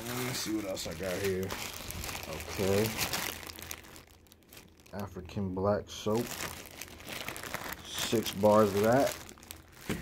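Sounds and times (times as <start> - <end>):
plastic packaging crinkling: 0.0 - 5.4, 6.0 - 10.0.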